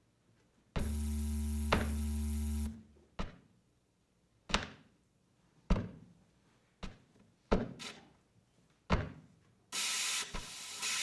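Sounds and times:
buzzing electrical hum drone: 0.8s - 2.9s.

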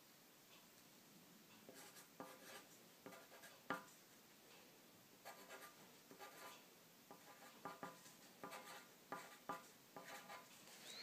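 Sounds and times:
pencil scratching on paper: 1.7s - 3.9s, 5.2s - 10.5s.

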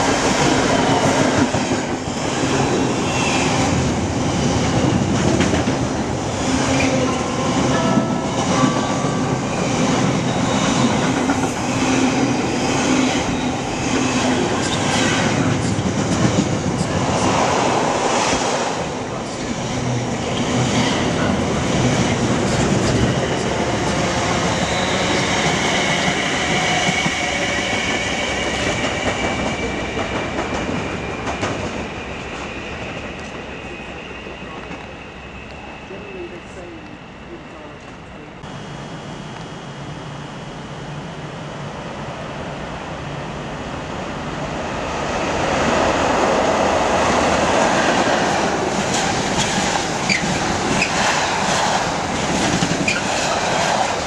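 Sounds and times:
train wheels clacking over rail joints: 47.6s - 54.0s.

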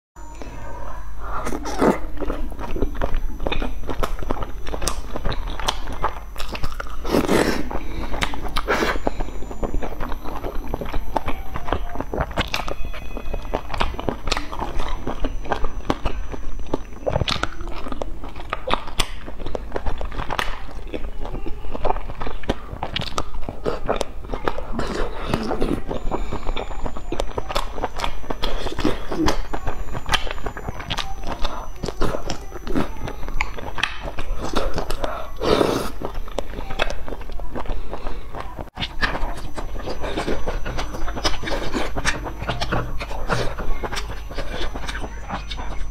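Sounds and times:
close-miked chewing and mouth clicks: 1.3s - 45.9s.

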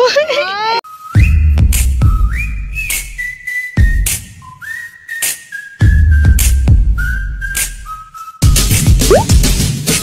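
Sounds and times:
whistled melody: 0.9s - 9.3s.

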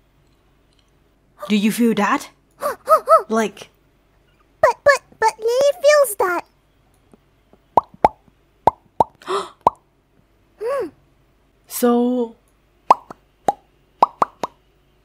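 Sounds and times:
short voiced sounds: 2.6s - 3.5s
lip pops: 7.8s - 9.8s, 12.9s - 14.6s.

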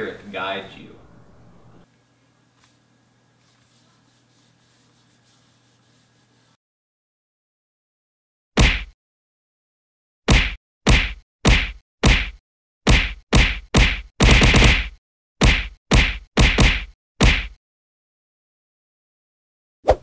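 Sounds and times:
loud sharp whack: 8.6s - 9.0s, 10.3s - 12.3s.

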